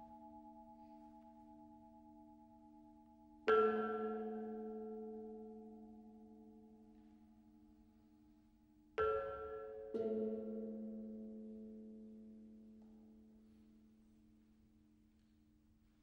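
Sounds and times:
metal temple bowls ringing: 0.0s - 7.1s.

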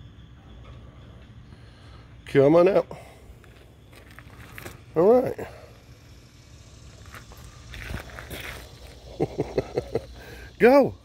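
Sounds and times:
faint scuffling and scraping: 3.4s - 4.9s, 6.9s - 9.0s.

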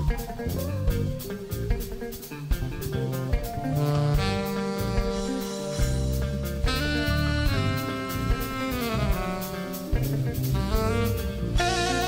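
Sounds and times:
bass: 0.0s - 12.0s
drum kit: 0.0s - 12.0s
alto saxophone: 2.9s - 12.0s.

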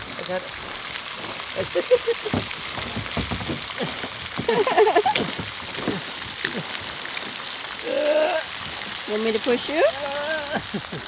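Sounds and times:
fountain spray splashing: 0.0s - 11.0s
kayak scraping across grass: 0.6s - 7.4s.

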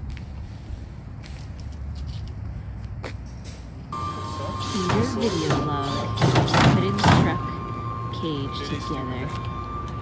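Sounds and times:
distant traffic rumble: 0.0s - 10.0s.

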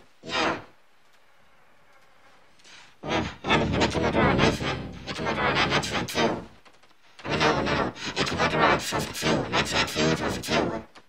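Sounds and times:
person talking: 0.0s - 0.7s, 3.0s - 6.6s, 7.2s - 10.9s.

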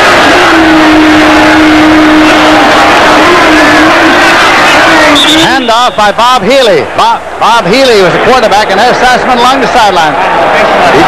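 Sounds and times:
stadium crowd roaring: 0.0s - 11.0s.

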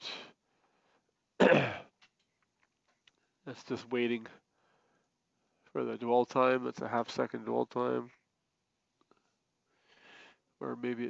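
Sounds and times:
man clearing his throat: 1.4s - 1.9s.

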